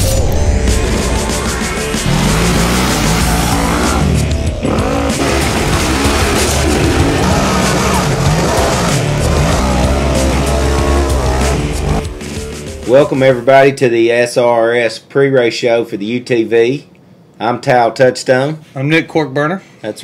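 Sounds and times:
background music: 0.0 - 14.3
buggy engine revving: 1.0 - 12.4.

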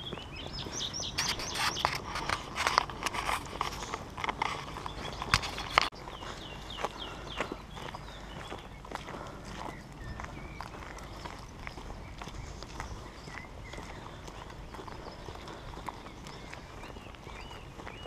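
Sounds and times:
footsteps on gravel: 0.0 - 18.0
footsteps on tarmac: 0.0 - 18.0
small bird calling: 0.0 - 18.0.

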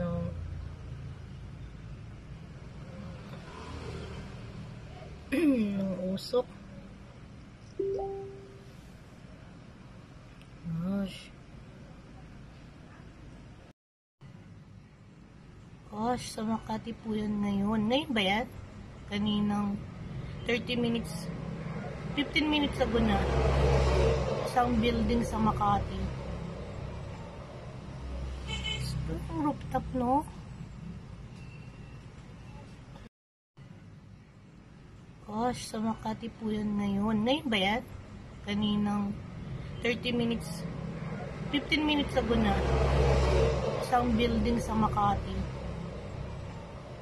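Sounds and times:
city traffic rumble: 0.0 - 47.0
low background rumble with hiss: 8.6 - 23.3.

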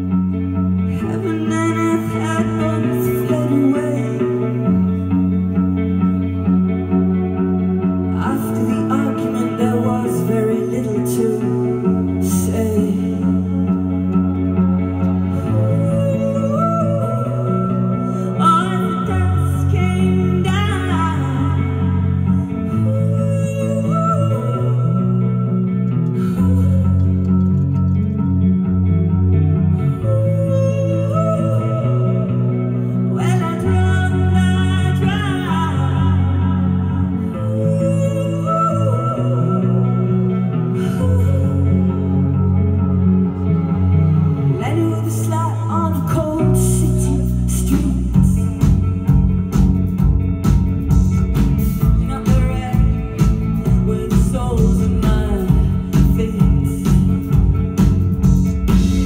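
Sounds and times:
bass and keyboard notes: 0.0 - 59.0
electric guitar: 0.0 - 59.0
rock band playing: 0.0 - 59.0.

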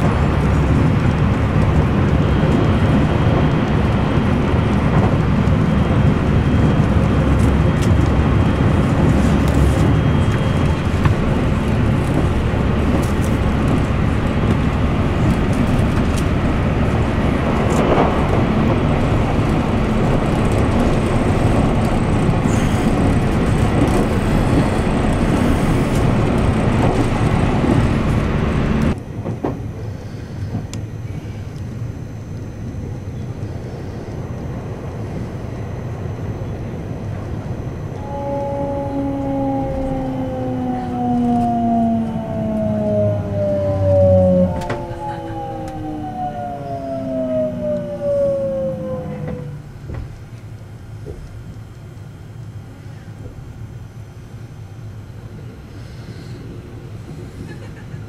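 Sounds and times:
train wheels rumbling on track: 0.0 - 58.0.

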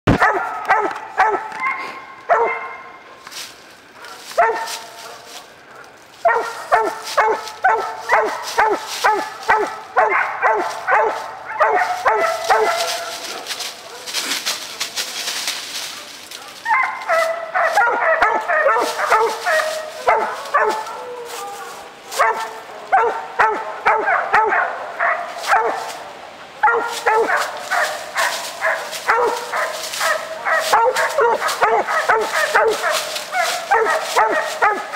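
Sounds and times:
puppy barking: 0.1 - 3.0, 4.0 - 5.2, 6.2 - 14.2, 16.4 - 21.5, 22.1 - 26.0, 26.6 - 34.9
rustling in dry leaves: 0.1 - 34.9.

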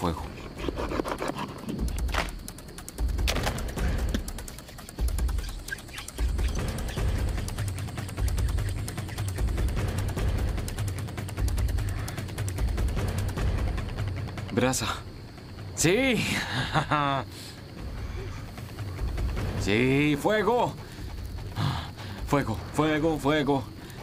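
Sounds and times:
wooden spindle rubbing on wood: 4.4 - 10.8.

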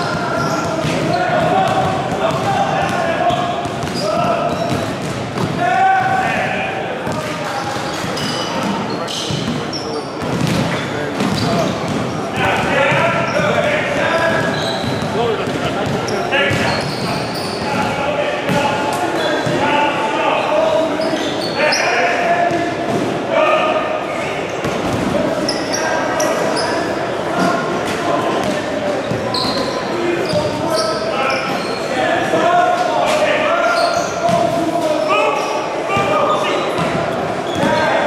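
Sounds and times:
basketballs bouncing on wooden court: 0.0 - 18.7
background voices talking: 0.0 - 38.0.

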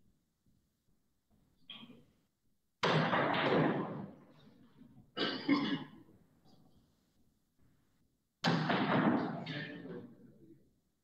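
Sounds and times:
person clearing throat: 5.2 - 6.0.

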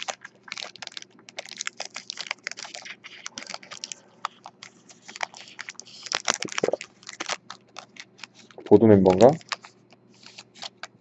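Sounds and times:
foil wrapper crinkling: 0.0 - 11.0.

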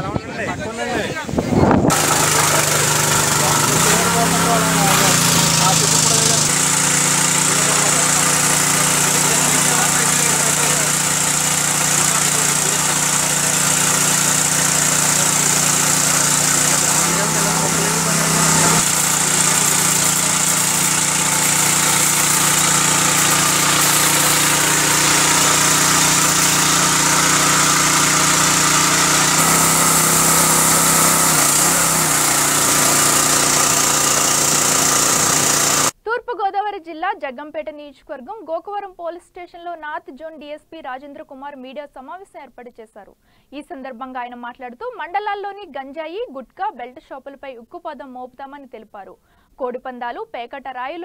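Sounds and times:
crop sprayer engine running: 1.9 - 36.0.

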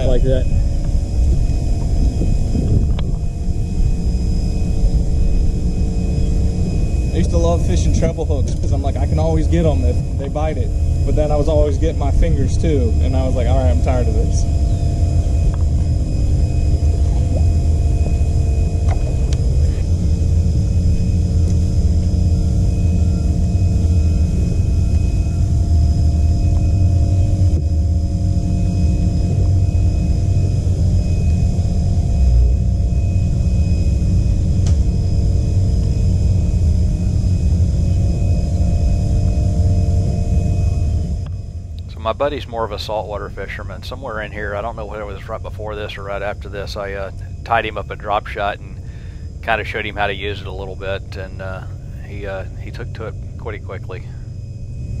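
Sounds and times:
low rumble: 0.0 - 55.0
steady tonal hum: 0.0 - 55.0.

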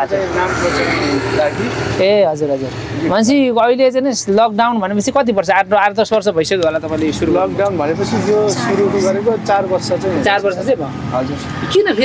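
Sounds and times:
steady rushing noise: 0.0 - 3.4
man speaking: 0.0 - 11.5.

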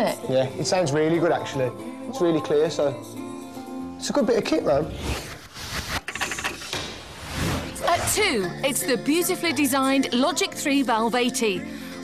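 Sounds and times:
swish transition sound effect: 6.9 - 8.2.

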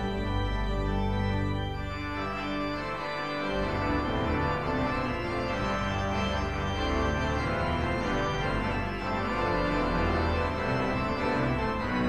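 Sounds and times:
organ pedal bass line: 0.0 - 12.0
pipe organ chords: 0.0 - 12.0.

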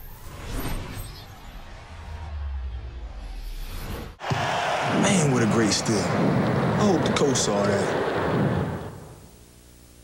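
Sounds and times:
arena crowd noise: 4.2 - 9.2.

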